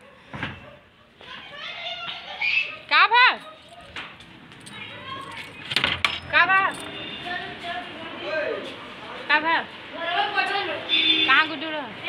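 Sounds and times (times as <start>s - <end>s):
children calling and chattering: 0.0s - 12.0s
woman exclaiming and laughing: 1.2s - 4.0s.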